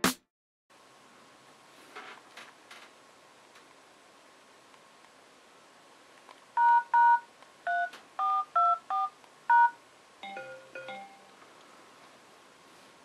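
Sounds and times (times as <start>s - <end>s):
touch-tone keypad beeps: 6.6s - 11.2s.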